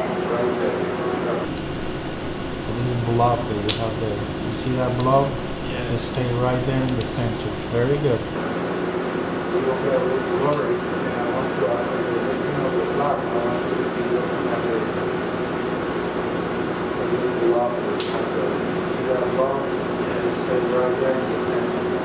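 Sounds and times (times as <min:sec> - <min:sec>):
low murmured voices: 0:00.0 - 0:01.6, 0:09.4 - 0:15.6, 0:16.8 - 0:22.0
medical equipment humming: 0:00.0 - 0:22.0
thin high steady tone: 0:00.0 - 0:22.0.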